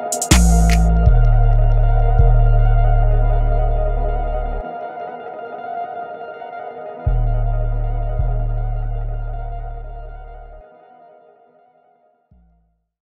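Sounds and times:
echoing guitar melody: 0:00.0 - 0:11.8
decaying bass notes: 0:00.2 - 0:04.6, 0:07.1 - 0:10.6.

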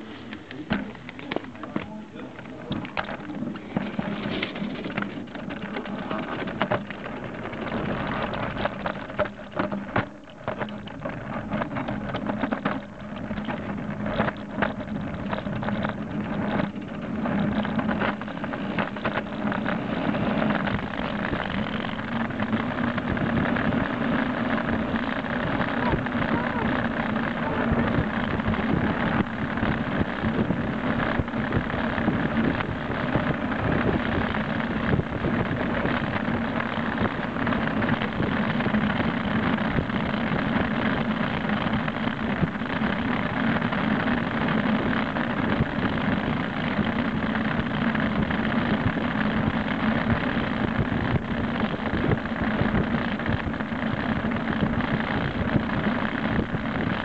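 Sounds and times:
bicycle trailer rattling: 0:00.0 - 0:57.0
road and wind rushing: 0:02.2 - 0:57.0.

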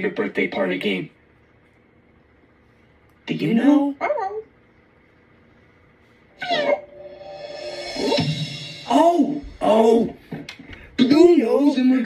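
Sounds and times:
faint steady hum: 0:00.0 - 0:12.0
high falling yelp: 0:06.4 - 0:10.2
music: 0:06.7 - 0:10.1.

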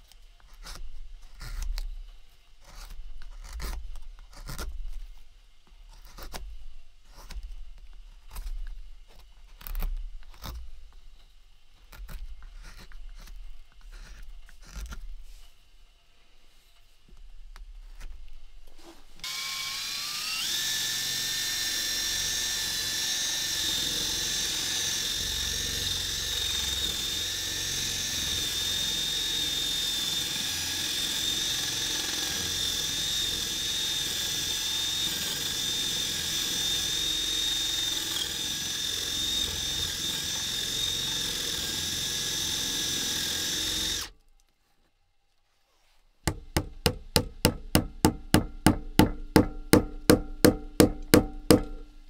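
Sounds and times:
cordless drill whining: 0:19.2 - 0:44.1.

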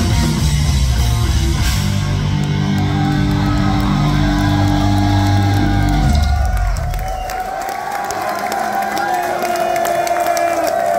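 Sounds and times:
death metal band playing live: 0:00.0 - 0:07.0
crowd cheering and whooping: 0:02.1 - 0:10.9.

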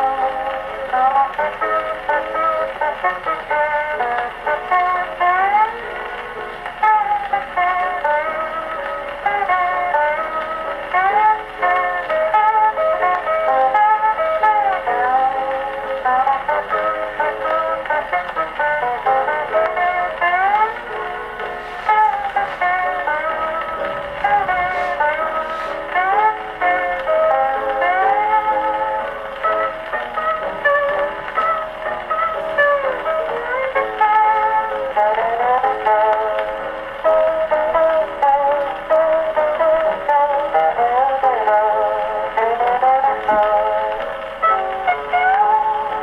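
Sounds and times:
steel guitar music on phonograph: 0:00.0 - 0:46.0.

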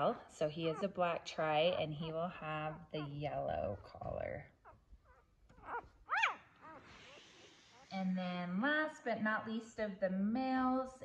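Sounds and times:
puppy squealing: 0:04.6 - 0:07.2.

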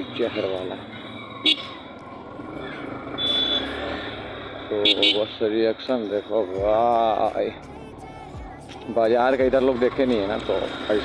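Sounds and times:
road and traffic noise: 0:00.0 - 0:11.0
short high beep: 0:03.2 - 0:03.7.

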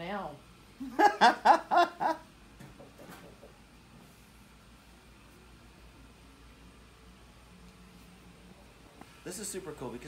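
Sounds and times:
person laughing: 0:00.8 - 0:02.3.

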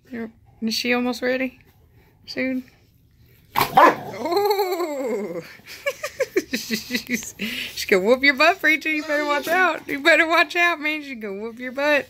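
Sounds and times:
dog barking: 0:03.6 - 0:04.2
dog yelping cry: 0:03.6 - 0:04.5.

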